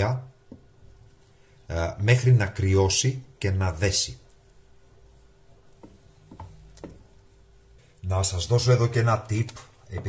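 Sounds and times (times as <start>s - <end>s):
faint steady hum: 0.0s - 10.0s
wooden spoon stirring in metal pot: 4.2s - 8.0s.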